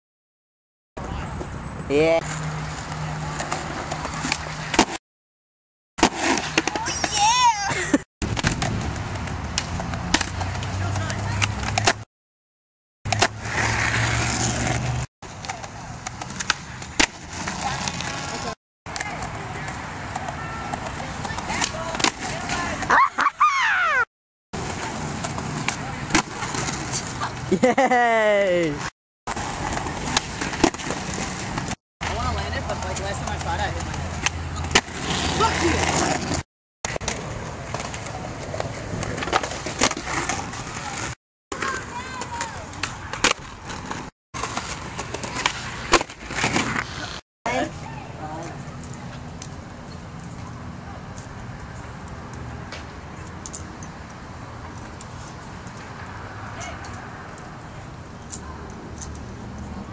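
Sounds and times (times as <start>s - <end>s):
skateboard wheels rolling on concrete: 1.0s - 5.0s, 6.0s - 12.1s, 13.1s - 59.9s
sharp skateboard clack: 3.4s - 5.0s, 8.2s - 12.0s, 13.1s - 22.9s, 32.8s - 47.1s.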